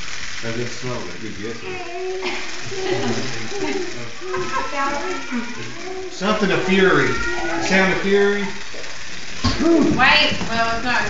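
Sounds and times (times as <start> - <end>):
people talking indistinctly: 0.4 - 11.0
person laughing: 1.6 - 5.7.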